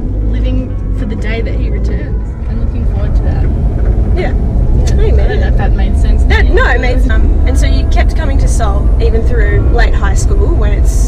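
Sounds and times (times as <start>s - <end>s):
car driving rumble: 0.0s - 11.0s
woman talking: 0.3s - 3.5s, 4.2s - 11.0s.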